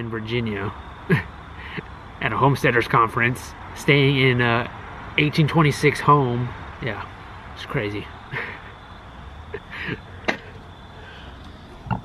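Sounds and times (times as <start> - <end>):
steady low hum: 0.0 - 12.0
man laughing: 1.1 - 1.8, 8.3 - 8.8, 9.5 - 10.6.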